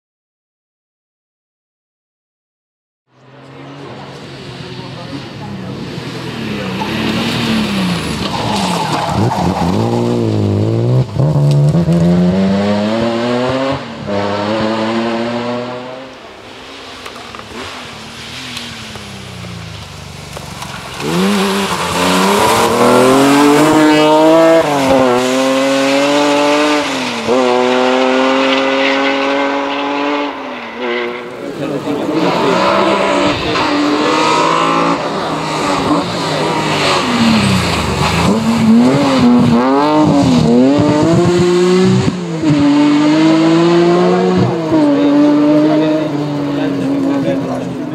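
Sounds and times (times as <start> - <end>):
rally car engine revving: 3.2 - 47.9.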